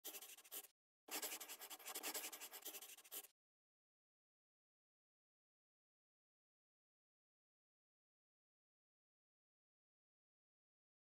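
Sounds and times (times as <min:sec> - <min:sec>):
drawing tool scratching: 0:00.0 - 0:03.3.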